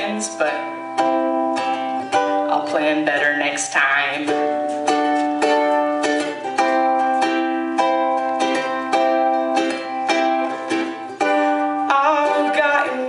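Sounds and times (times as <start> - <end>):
ukulele strumming: 0.0 - 13.0.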